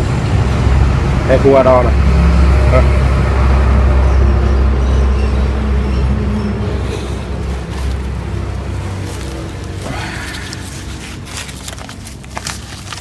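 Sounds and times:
motor vehicle engine running: 0.0 - 13.0.

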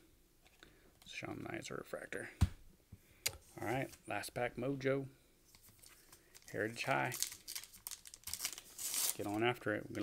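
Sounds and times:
wrapper crinkling and tearing: 5.6 - 10.0.

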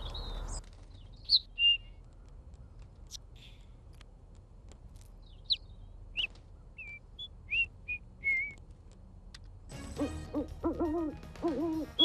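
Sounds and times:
small bird chirping: 0.0 - 2.0, 5.2 - 8.6.

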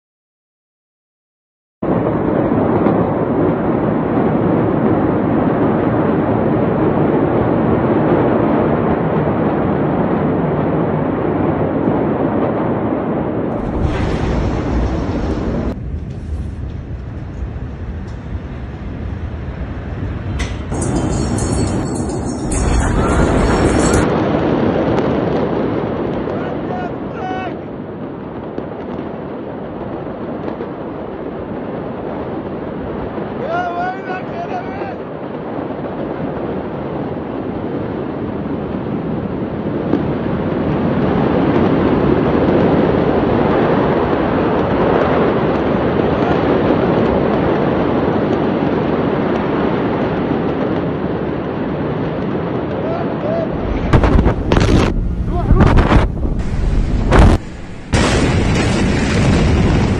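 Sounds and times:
explosion burst: 1.8 - 27.2, 39.8 - 59.9
wind on microphone: 1.8 - 59.9
blast noise rushing: 13.5 - 24.4, 53.4 - 59.9.

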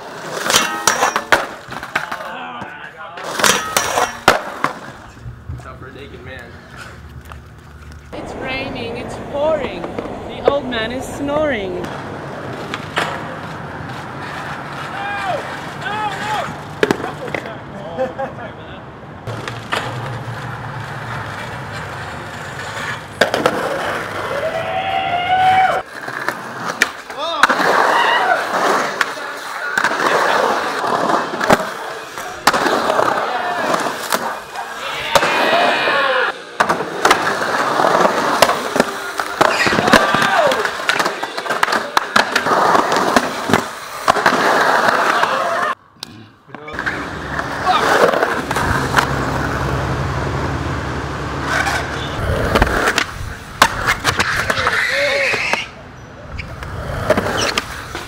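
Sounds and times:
skateboards clacking and landing: 0.0 - 5.7, 6.6 - 17.6, 19.2 - 45.8, 46.5 - 50.0, 51.3 - 58.0
skateboard wheels rolling on concrete: 0.0 - 58.0
people shouting and cheering: 1.9 - 3.2, 14.8 - 16.6, 24.2 - 25.9, 27.1 - 30.8, 31.8 - 36.6, 38.6 - 42.0, 44.8 - 45.8, 47.5 - 48.7.

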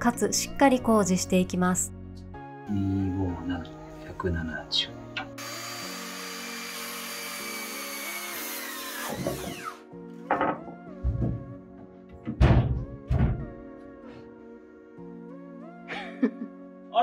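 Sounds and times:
background music: 0.0 - 17.0
circular saw cutting wood: 5.3 - 9.8.

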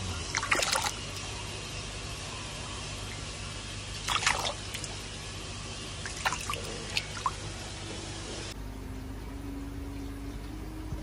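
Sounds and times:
steady background hiss: 0.0 - 11.0
water splashing in basin: 0.3 - 1.3, 4.0 - 5.1, 6.0 - 7.4.

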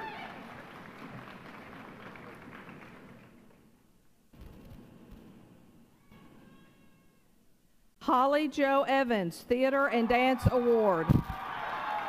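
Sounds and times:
audience applause in a hall: 0.0 - 3.8, 11.3 - 12.0.

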